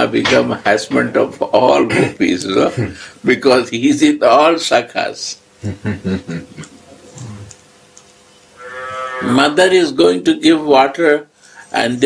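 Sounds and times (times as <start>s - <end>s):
man laughing: 5.6s - 7.5s
man humming: 5.6s - 7.6s.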